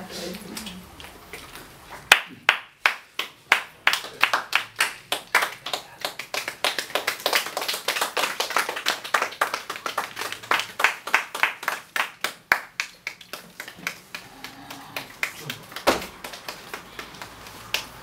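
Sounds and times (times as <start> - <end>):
small group applauding: 2.0 - 18.0.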